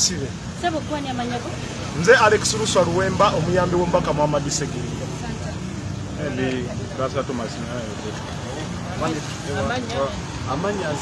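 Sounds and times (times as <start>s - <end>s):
road traffic engine hum: 0.0s - 11.0s
man speaking: 1.9s - 5.0s.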